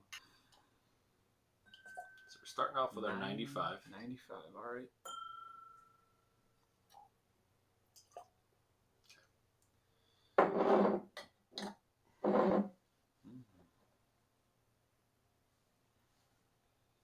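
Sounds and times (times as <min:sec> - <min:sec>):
glass clinking and ringing: 0:01.6 - 0:02.6, 0:05.0 - 0:06.4.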